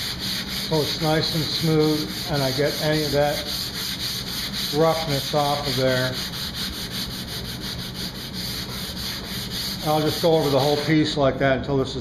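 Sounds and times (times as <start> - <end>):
hand-sanding wood: 0.0 - 11.2.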